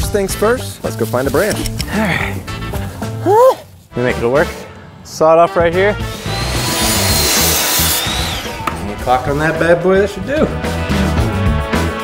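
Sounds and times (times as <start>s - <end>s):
miter saw cutting branch: 6.1s - 9.1s
saw blade whine winding down: 6.1s - 9.6s.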